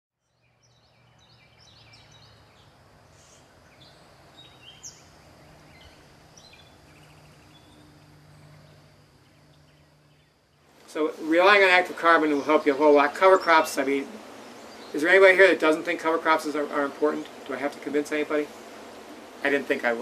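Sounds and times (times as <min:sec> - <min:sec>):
small birds chirping: 0:00.2 - 0:20.0
low steady hum: 0:00.8 - 0:20.0.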